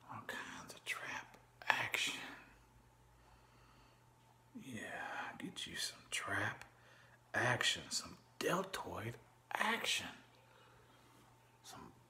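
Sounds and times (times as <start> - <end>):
man whispering breathily: 0.0 - 2.6, 4.6 - 10.3, 11.6 - 12.0.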